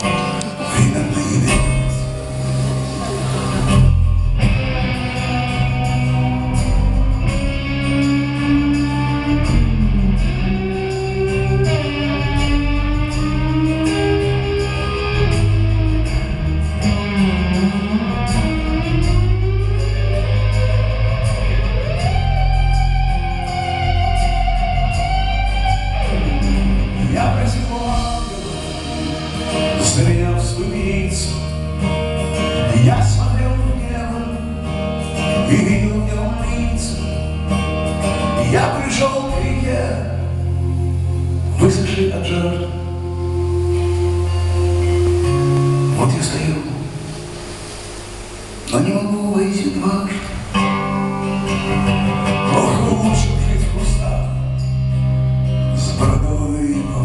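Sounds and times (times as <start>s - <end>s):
person singing: 0.0s - 24.0s, 24.8s - 37.4s, 38.1s - 40.4s, 48.7s - 54.8s, 55.7s - 57.0s
bass guitar: 0.0s - 57.0s
lead electric guitar bending notes: 0.0s - 57.0s
drums with cymbal strokes: 1.3s - 35.8s, 42.9s - 55.0s.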